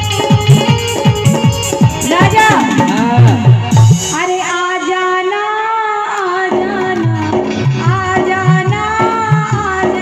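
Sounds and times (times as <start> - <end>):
harmonium: 0.0 - 10.0.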